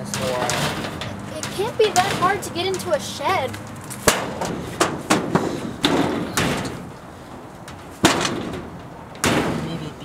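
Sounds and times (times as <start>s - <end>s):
sheet-metal door rattling and banging: 0.0s - 7.0s, 7.6s - 9.8s.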